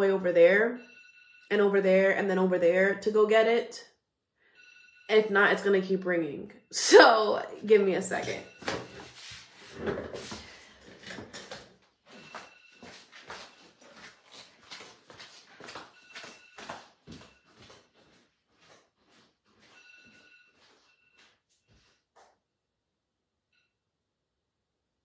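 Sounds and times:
faint high electronic alarm tone: 0:00.7 - 0:01.6, 0:04.4 - 0:05.6, 0:08.0 - 0:09.2, 0:12.1 - 0:14.1, 0:15.9 - 0:17.7, 0:19.6 - 0:22.0
footsteps in a house: 0:08.1 - 0:22.6.

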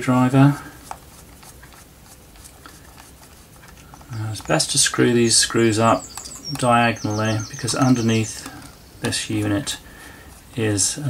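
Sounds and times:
screwdriver ticking and scratching: 0:00.7 - 0:06.8, 0:07.6 - 0:10.8.

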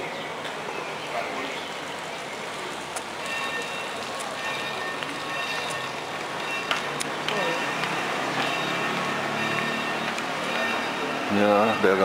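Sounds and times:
chatter of passers-by: 0:00.0 - 0:12.0
outdoor hubbub: 0:00.0 - 0:12.0
faint steady tones: 0:03.1 - 0:12.0.

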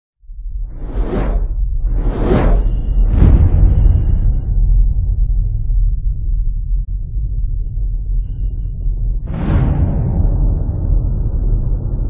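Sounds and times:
deep rumbling boom: 0:00.3 - 0:12.0.

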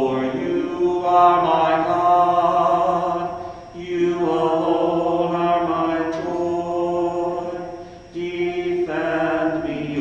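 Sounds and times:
person singing a hymn: 0:00.0 - 0:10.0.

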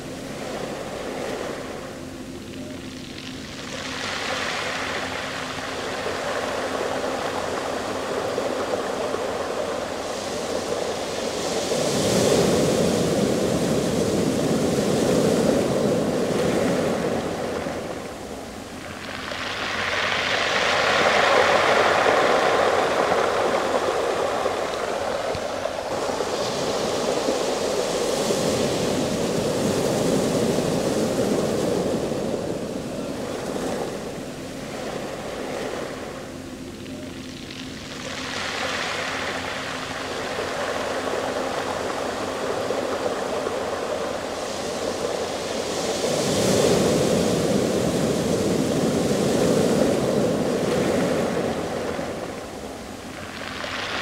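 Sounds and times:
waves washing over pebble beach: 0:00.0 - 0:54.0.

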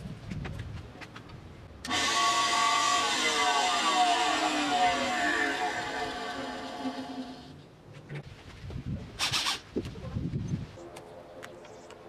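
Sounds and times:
belt sander motor running: 0:01.9 - 0:07.6.

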